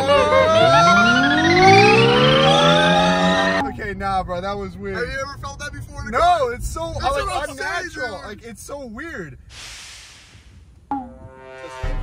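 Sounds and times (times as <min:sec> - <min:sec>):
electric car accelerating: 0:00.0 - 0:05.9.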